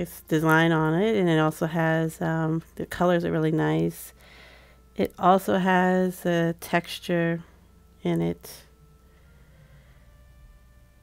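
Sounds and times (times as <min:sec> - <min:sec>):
faint thin sustained tones: 0:00.0 - 0:11.0
low steady hum: 0:00.0 - 0:11.0.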